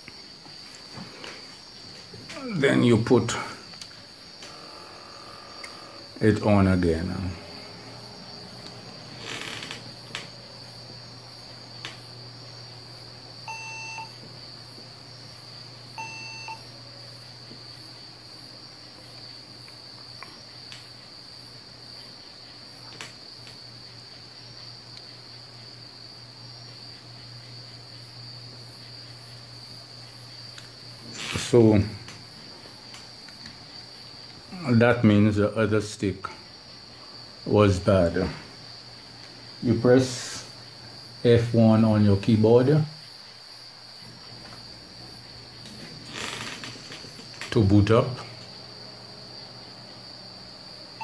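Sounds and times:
computer fan humming: 0:00.0 - 0:20.0
faint high whine: 0:00.7 - 0:17.7
short computer beeps: 0:13.5 - 0:14.2, 0:16.0 - 0:16.6.

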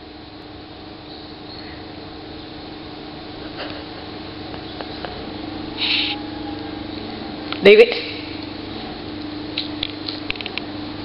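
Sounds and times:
low hum: 0:00.0 - 0:11.0
dog whining: 0:05.0 - 0:07.5.

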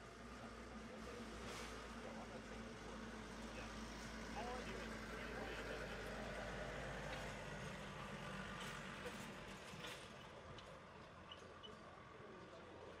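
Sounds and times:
faint distant voices: 0:00.0 - 0:13.0.

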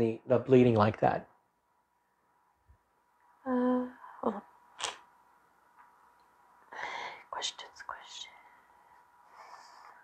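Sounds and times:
person whispering: 0:06.8 - 0:08.5.

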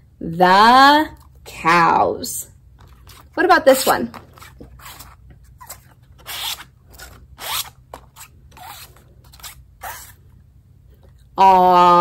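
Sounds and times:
paper cards sliding in plastic pockets: 0:02.8 - 0:10.2.

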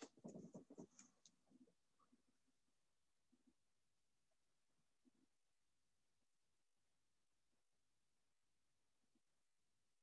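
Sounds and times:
rustling and tapping near microphone: 0:00.0 - 0:01.3.

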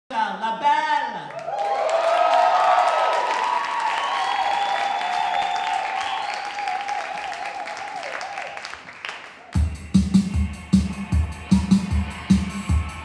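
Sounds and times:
audience applauding and cheering: 0:01.3 - 0:09.7.

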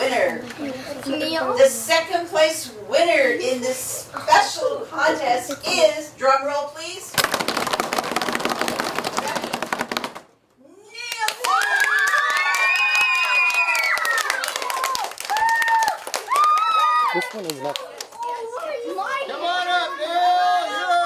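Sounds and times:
hands drumming on desks: 0:07.2 - 0:10.3
clapping: 0:11.1 - 0:18.8
children cheering and shouting: 0:11.4 - 0:17.4, 0:18.2 - 0:21.0.

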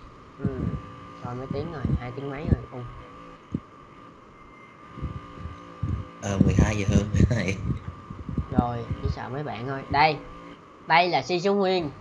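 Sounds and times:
low background noise: 0:00.0 - 0:12.0
thin electrical hum: 0:00.0 - 0:12.0
faint voice murmuring: 0:06.2 - 0:07.6.

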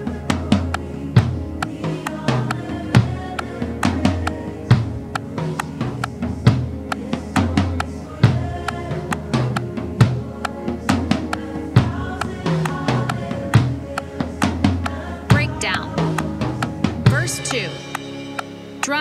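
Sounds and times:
band backing track: 0:00.0 - 0:19.0
drum kit beat: 0:00.0 - 0:19.0.

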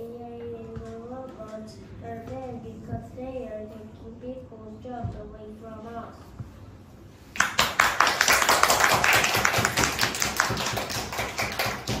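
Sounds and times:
small group applauding: 0:07.3 - 0:12.0.

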